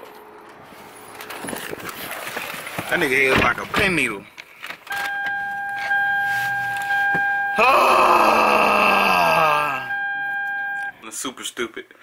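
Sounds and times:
steady electronic beep tone: 0:04.9 - 0:07.6, 0:09.7 - 0:11.0.

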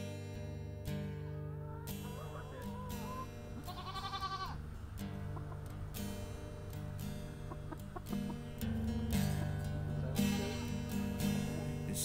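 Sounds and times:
acoustic guitar music: 0:00.0 - 0:12.0
wavering animal calls: 0:01.2 - 0:11.9
goat bleating: 0:01.4 - 0:05.8, 0:10.2 - 0:10.9.

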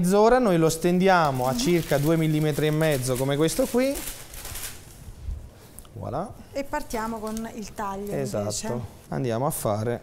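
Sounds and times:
baking paper rustling: 0:01.2 - 0:05.1.

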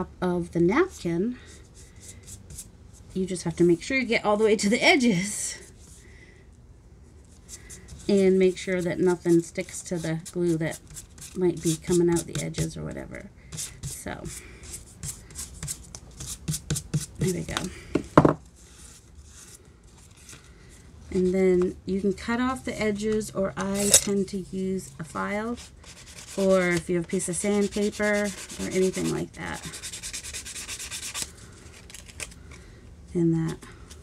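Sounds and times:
hand rubbing paper: 0:25.5 - 0:32.4
paper handling: 0:31.0 - 0:32.6.

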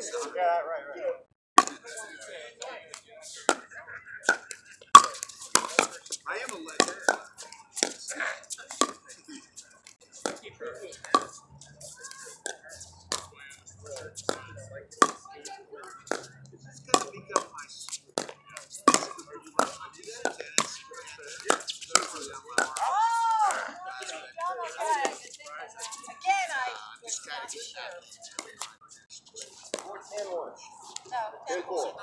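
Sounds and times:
paddles striking plastic ball: 0:01.6 - 0:02.0, 0:04.3 - 0:08.0, 0:14.2 - 0:20.8, 0:21.4 - 0:23.7
faint voices: 0:01.6 - 0:32.0.

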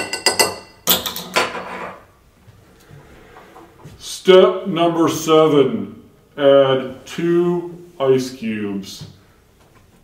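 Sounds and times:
metal spoon clinking against glass: 0:00.0 - 0:01.2.

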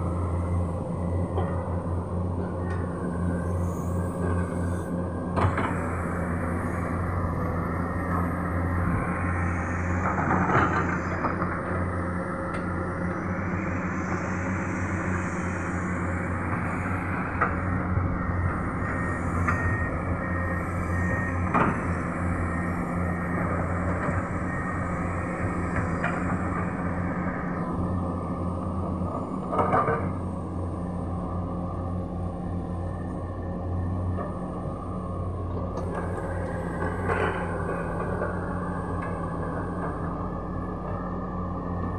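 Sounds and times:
excavator diesel engines rumbling: 0:00.0 - 0:41.9.

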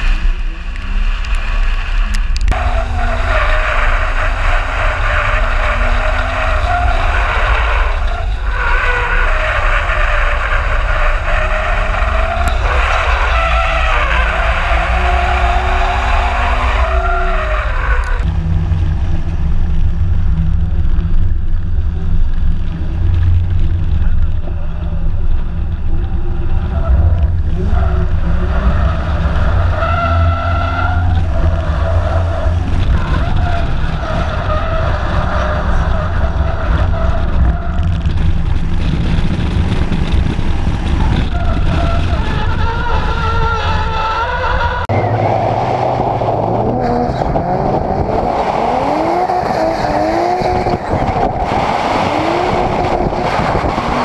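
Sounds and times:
car engine revving: 0:00.0 - 0:23.1, 0:44.2 - 0:54.0
heavy low rumble: 0:00.0 - 0:54.0
tyres skidding: 0:00.0 - 0:54.0
wind on microphone: 0:31.1 - 0:54.0.

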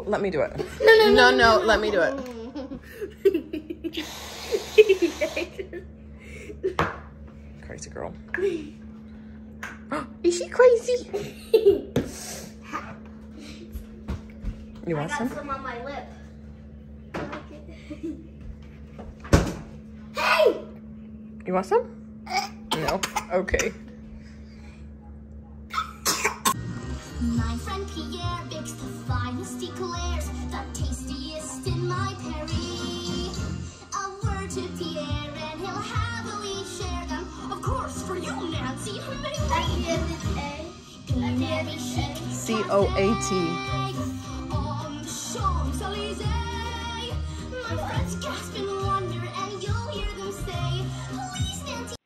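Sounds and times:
small child giggling: 0:02.2 - 0:04.0, 0:11.1 - 0:12.0
person breathing: 0:06.1 - 0:06.6, 0:24.1 - 0:25.0
music: 0:26.4 - 0:52.0.

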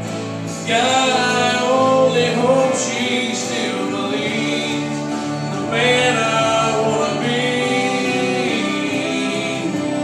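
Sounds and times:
instrumental accompaniment: 0:00.0 - 0:10.0
man singing country ballad: 0:00.4 - 0:10.0.

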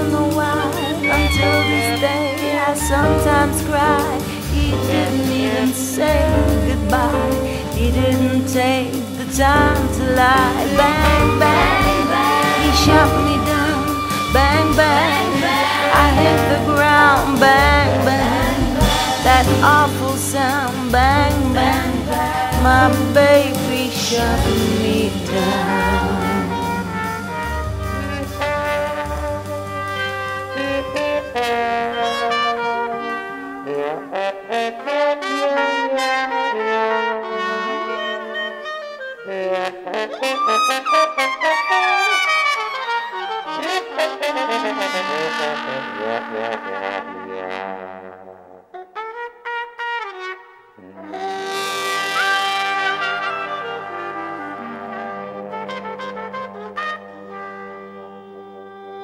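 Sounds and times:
jazz horn section: 0:00.0 - 0:59.0
trombone: 0:00.0 - 0:59.0.

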